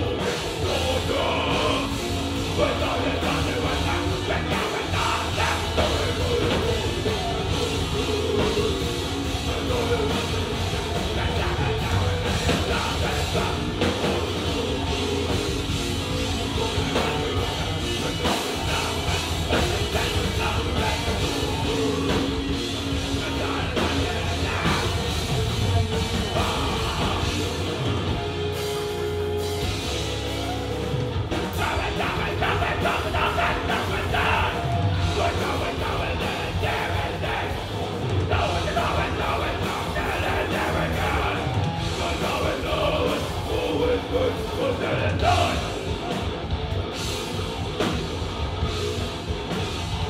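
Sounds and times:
person singing: 0:00.0 - 0:15.4, 0:31.4 - 0:37.7, 0:38.3 - 0:45.8
live rock band playing: 0:00.0 - 0:50.0.

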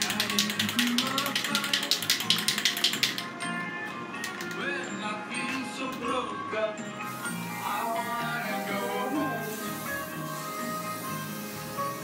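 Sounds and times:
spray can ball rattling: 0:00.0 - 0:03.3, 0:04.2 - 0:04.6
background music: 0:00.0 - 0:12.0.

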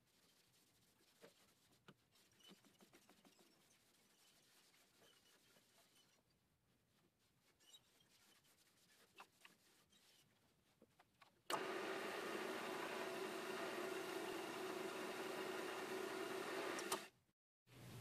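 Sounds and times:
wood lathe motor humming: 0:11.5 - 0:17.1.

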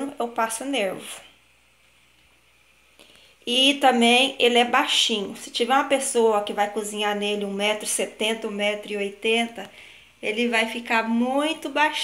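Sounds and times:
woman speaking: 0:00.0 - 0:01.4, 0:03.4 - 0:12.0.

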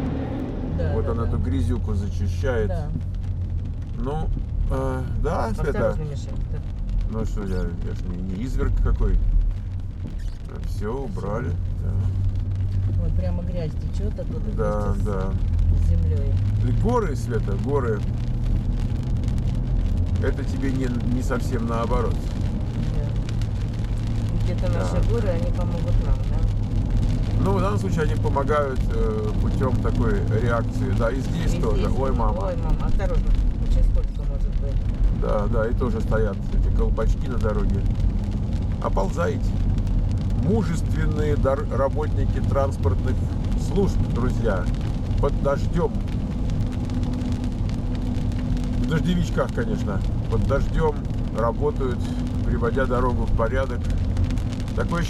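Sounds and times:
car driving on wet road: 0:00.0 - 0:55.0
raindrops hitting windshield: 0:00.0 - 0:55.0.

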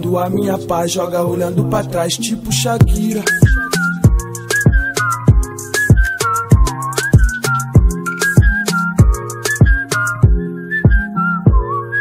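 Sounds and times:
deep bass kicks: 0:02.8 - 0:05.5, 0:09.0 - 0:11.7
whistle-like synth melody: 0:02.9 - 0:12.0.

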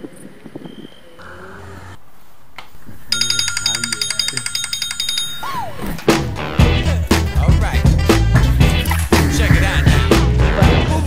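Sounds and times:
electronic alarm beeping: 0:03.1 - 0:05.8.

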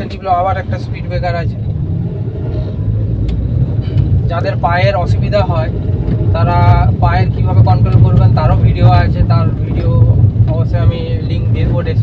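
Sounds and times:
car engine and road drone: 0:00.0 - 0:12.0.

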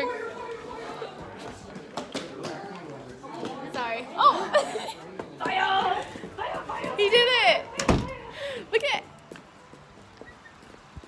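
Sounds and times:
door banging shut: 0:07.8 - 0:08.2.

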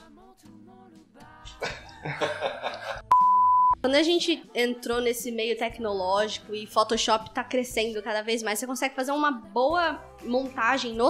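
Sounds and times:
censor bleep tone: 0:03.1 - 0:03.8.

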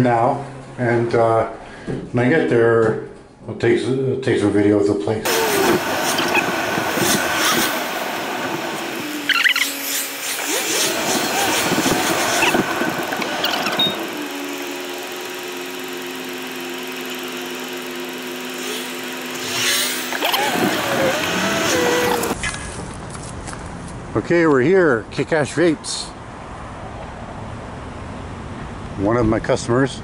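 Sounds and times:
car engine and road noise: 0:05.3 - 0:22.4.

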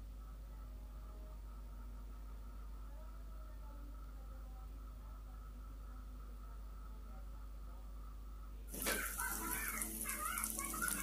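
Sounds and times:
food sizzling in a wok: 0:08.7 - 0:11.0.

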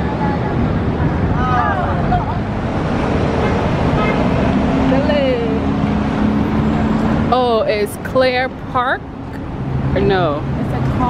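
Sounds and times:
cars passing: 0:00.0 - 0:11.0.

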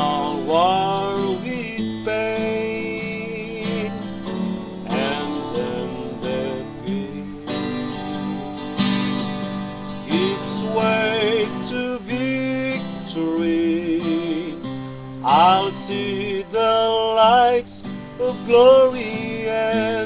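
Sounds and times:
person singing a hymn: 0:00.0 - 0:08.9, 0:10.0 - 0:20.0
instrumental accompaniment: 0:00.0 - 0:20.0.

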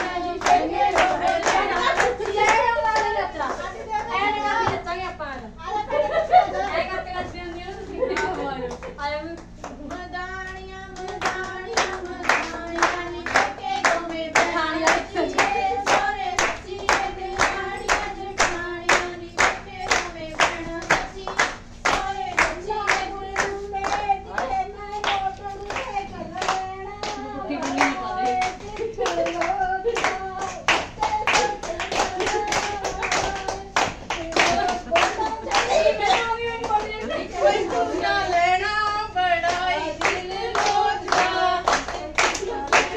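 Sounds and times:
women clapping hands: 0:00.0 - 0:04.1, 0:08.1 - 0:37.9, 0:39.4 - 0:42.9
women singing together: 0:00.0 - 0:42.9.

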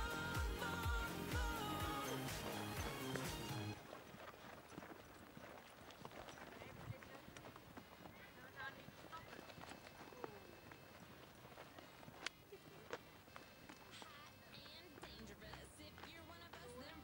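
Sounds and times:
hooves clip-clopping on dirt: 0:00.0 - 0:17.0
faint voices: 0:06.3 - 0:17.0.

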